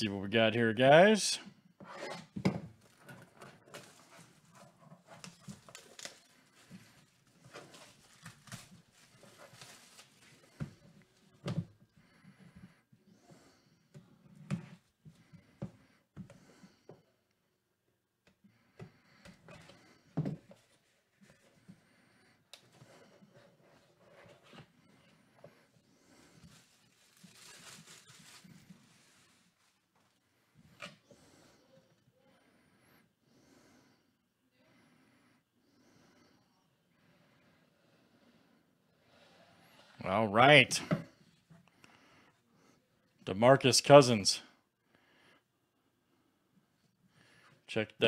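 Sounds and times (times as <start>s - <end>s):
faint clicks and rustles: 2.8s - 12.7s, 19.1s - 31.6s.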